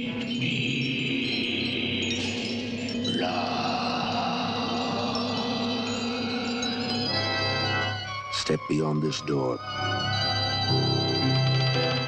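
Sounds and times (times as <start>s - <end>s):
low drone: 0.0s - 8.1s
shimmering chime-like tones: 0.0s - 12.0s.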